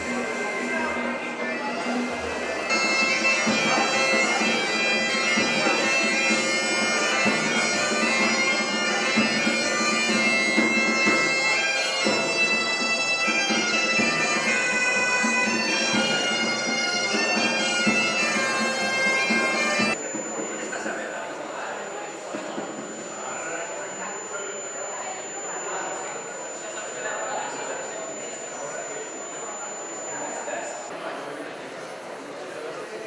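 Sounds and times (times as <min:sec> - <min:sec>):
bagpipe playing folk tune: 0:00.0 - 0:30.9.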